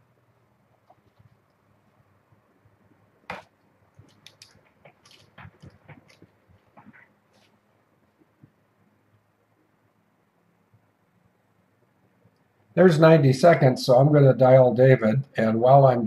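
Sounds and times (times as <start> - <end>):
faint clicks and taps at desk: 0.7 - 1.6, 3.3 - 7.5.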